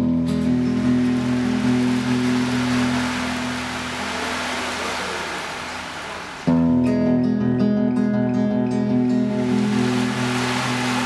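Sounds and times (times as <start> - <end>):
acoustic guitar chord: 0.0 - 11.0.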